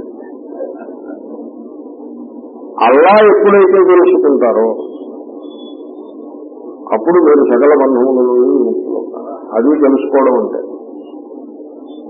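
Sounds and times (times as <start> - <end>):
low hum and background noise: 0.0 - 12.0
man talking: 2.8 - 4.8, 6.9 - 10.7.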